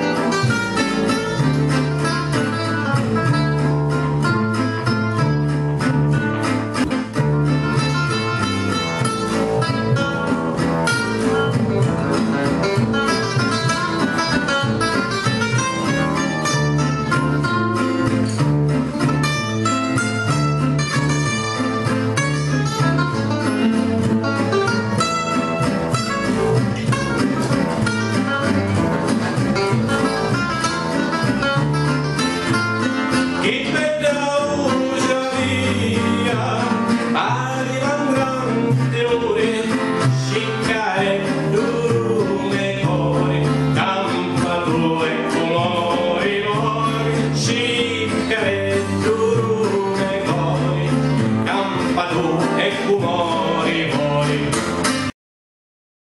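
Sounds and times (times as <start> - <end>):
plucked double bass: 0.0 - 55.1
rhythm guitar strumming: 0.0 - 55.1
acoustic guitar melody: 0.0 - 55.2.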